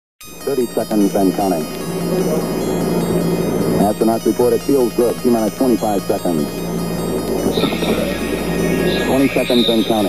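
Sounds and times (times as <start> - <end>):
low hum: 0.2 - 10.0.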